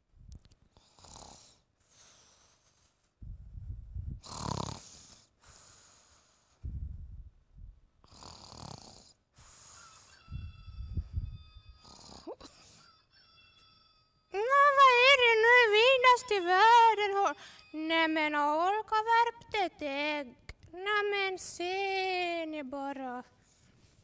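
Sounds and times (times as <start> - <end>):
person snoring: 0.8 - 1.6, 4.2 - 5.8, 8.0 - 10.1, 11.8 - 12.5
faint steady high tone: 9.6 - 19.4.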